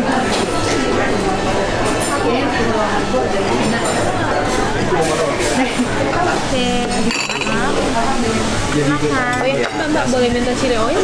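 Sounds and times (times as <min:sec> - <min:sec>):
dishes and cutlery clinking: 0:00.0 - 0:08.1.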